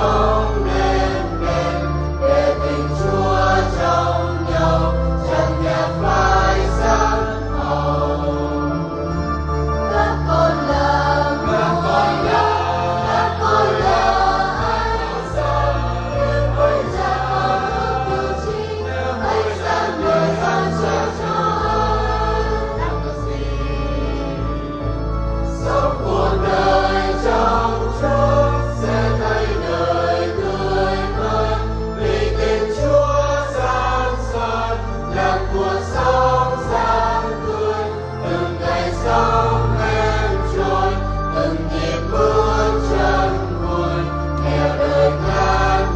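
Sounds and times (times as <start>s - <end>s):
church choir singing a hymn: 0.0s - 45.9s
instrumental accompaniment: 0.0s - 45.9s
sustained bass line: 0.0s - 45.9s.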